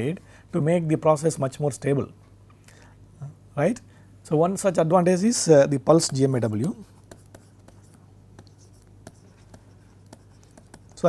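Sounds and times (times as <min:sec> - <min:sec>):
low steady hum: 0:00.0 - 0:11.0
pen scratching on tablet: 0:05.9 - 0:11.0.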